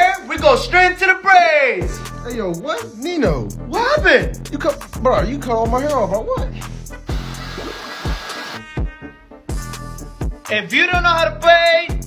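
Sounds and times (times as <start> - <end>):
background music with beat: 1.8 - 12.0
hair dryer blowing: 7.1 - 8.7.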